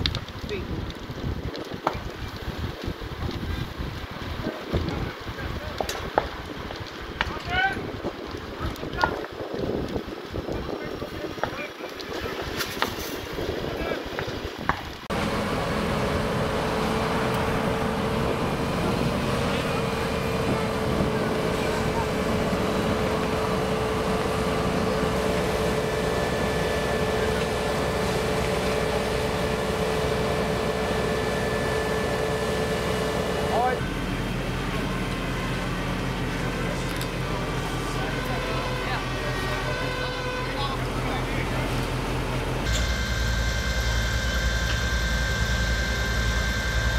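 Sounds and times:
wind buffeting microphone: 0.0 - 15.2
engine drone with whine: 15.0 - 46.9.

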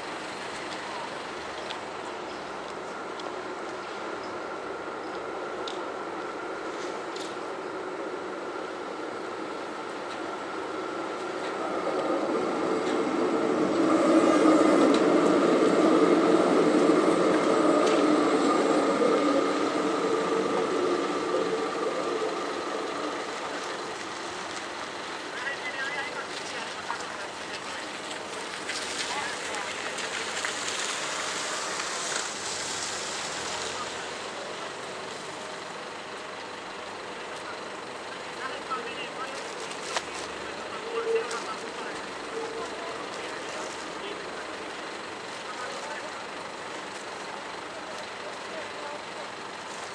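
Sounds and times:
street noise: 0.0 - 49.9
tram rumbling and whining: 0.0 - 49.9.

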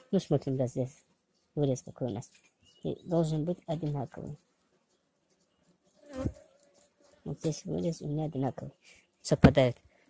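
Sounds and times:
flying insect buzzing: 3.6 - 8.2.

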